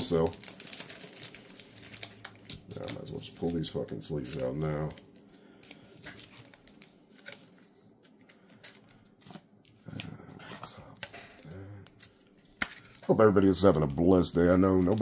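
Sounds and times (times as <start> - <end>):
plastic card sleeves rustling: 0.0 - 9.8, 10.5 - 15.0.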